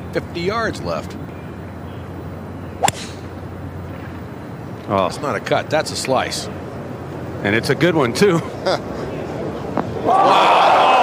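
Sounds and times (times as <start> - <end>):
golf club striking ball: 2.8 - 3.4.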